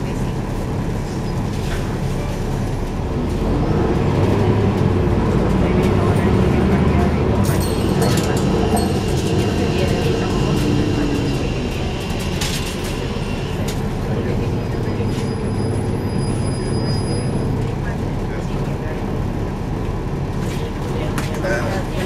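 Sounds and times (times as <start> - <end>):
bus engine low drone: 0.0 - 22.0
road noise: 0.0 - 22.0.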